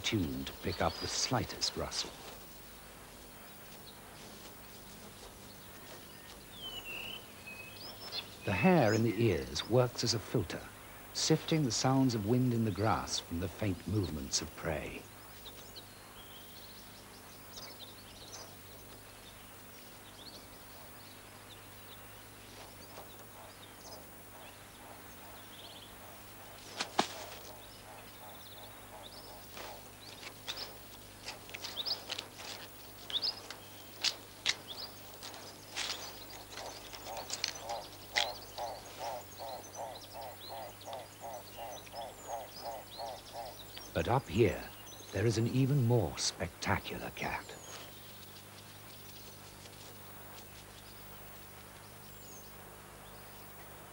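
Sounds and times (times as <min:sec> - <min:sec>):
faint bird chirps: 0:05.2 - 0:53.9
rapid repeated chirping call: 0:21.6 - 0:49.4.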